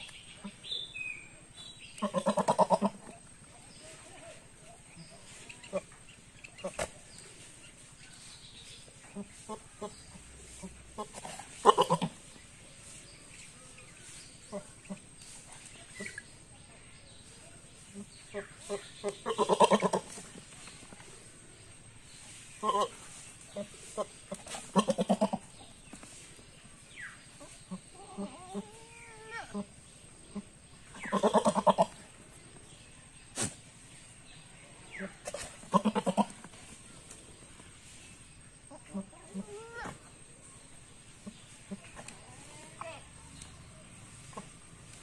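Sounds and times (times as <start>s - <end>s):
farmyard animal calls: 0.0s - 16.6s, 17.2s - 45.0s
goat bleating: 2.0s - 3.0s, 19.2s - 20.1s, 24.7s - 25.4s.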